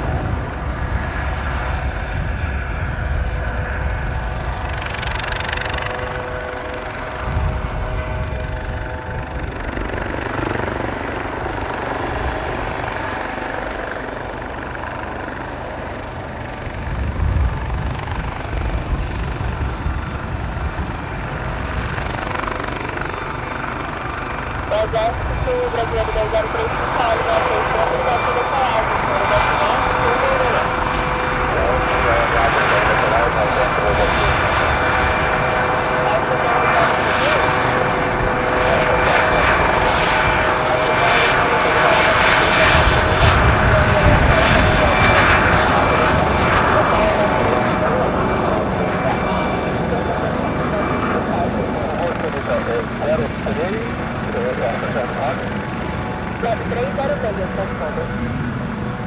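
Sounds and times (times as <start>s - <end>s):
helicopter rotor and turbine: 0.0s - 59.0s
steady whine: 0.0s - 59.0s.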